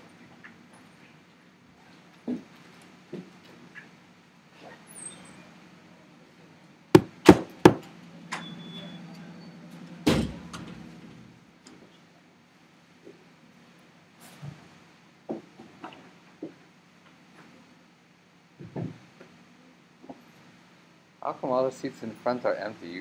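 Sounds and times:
low steady hum: 6.2 - 12.0
sharp knocks: 7.0 - 7.9.

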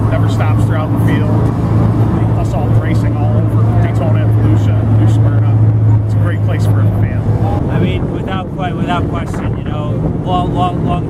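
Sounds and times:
low engine hum: 0.0 - 11.0
man speaking: 0.0 - 11.0.

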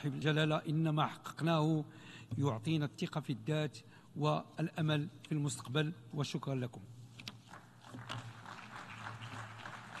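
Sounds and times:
audience clapping: 7.4 - 10.0.

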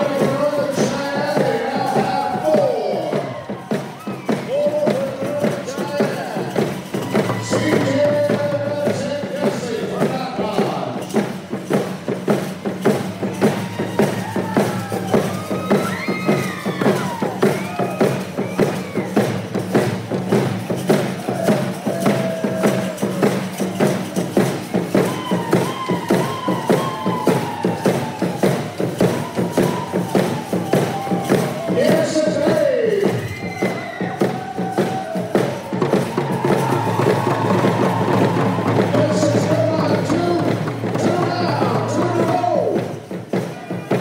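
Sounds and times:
group singing and calling: 0.0 - 5.0
frame hand drums beaten: 0.0 - 44.0.

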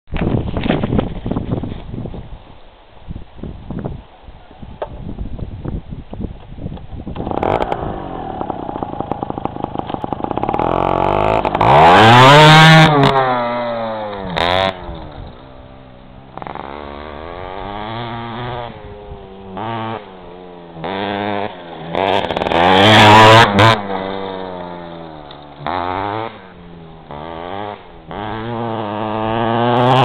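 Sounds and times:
small motorcycle engine revving: 6.9 - 30.0.

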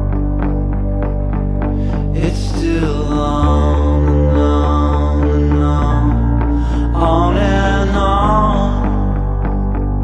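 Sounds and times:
held bass notes: 0.0 - 10.0
wavering melody line: 0.0 - 10.0.

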